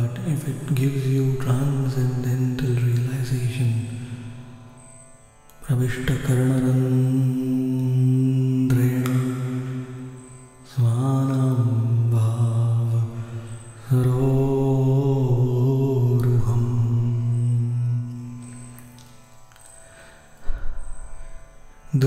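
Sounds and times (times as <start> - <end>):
man chanting: 0.0 - 4.4, 5.6 - 18.5.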